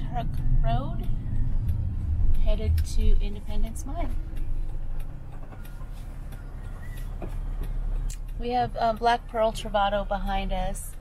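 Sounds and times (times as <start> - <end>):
road and engine rumble in van: 0.0 - 11.0.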